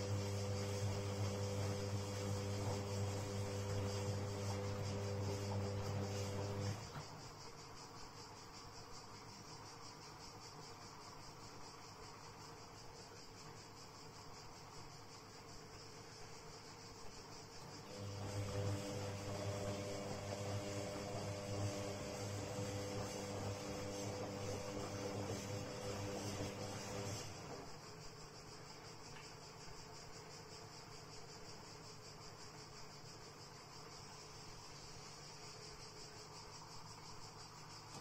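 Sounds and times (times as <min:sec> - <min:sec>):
drum turning wet laundry: 0:00.0 - 0:07.3, 0:17.6 - 0:27.9
washing machine motor humming: 0:00.0 - 0:07.6, 0:16.9 - 0:28.8
faint hiss: 0:00.0 - 0:38.0.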